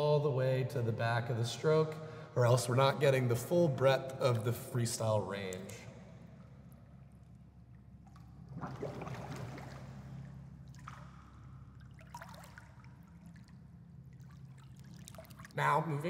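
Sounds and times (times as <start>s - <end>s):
steady low hum: 0.0s - 16.0s
water splashing from swimming: 7.1s - 15.6s.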